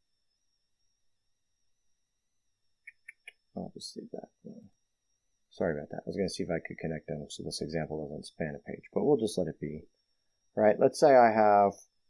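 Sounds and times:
thin electronic whine: 0.0 - 12.0
small click: 2.8 - 3.5.

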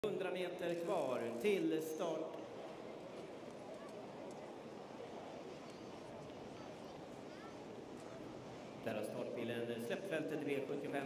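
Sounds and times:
low outdoor hiss: 0.0 - 11.0.

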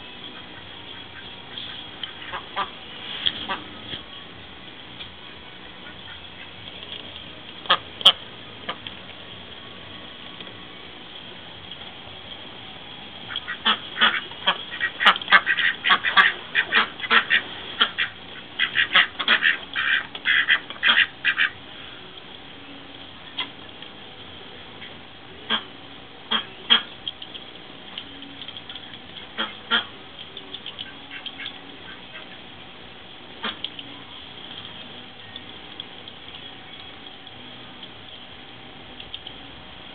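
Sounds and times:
ducks quacking: 0.3 - 4.0, 13.3 - 21.6, 24.8 - 25.7, 26.3 - 27.0, 29.2 - 29.9, 30.8 - 32.5, 33.4 - 33.7.

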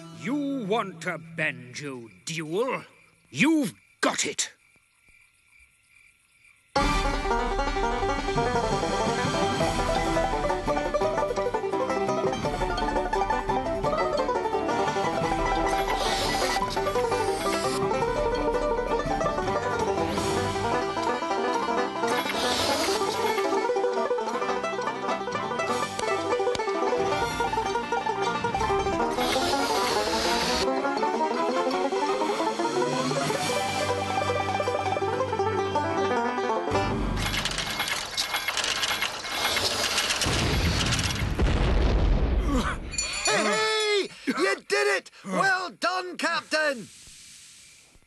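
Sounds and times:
fast banjo picking: 6.8 - 22.3, 22.9 - 39.0
hissing noise bursts: 15.7 - 17.9, 22.1 - 23.5, 29.0 - 30.7, 46.8 - 48.0.

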